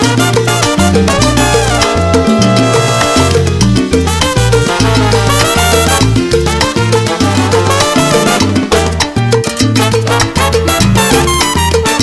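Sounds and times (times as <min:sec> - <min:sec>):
bass repeating low notes: 0:00.0 - 0:11.3
busy percussion: 0:00.0 - 0:12.0.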